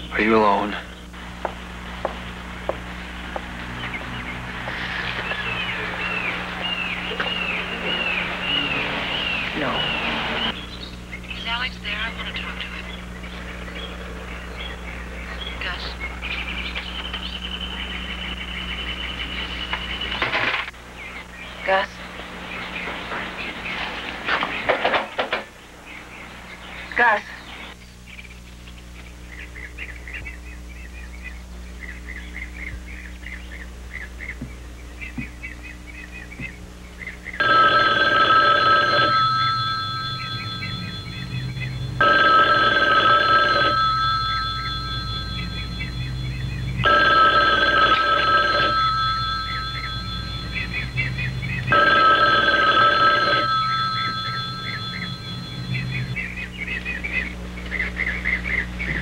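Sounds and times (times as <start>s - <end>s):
landline telephone ringing: 37.4s - 56.2s.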